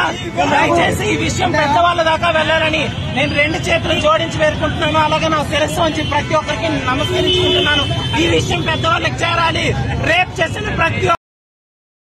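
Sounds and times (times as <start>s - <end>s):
road traffic noise: 0.0s - 11.2s.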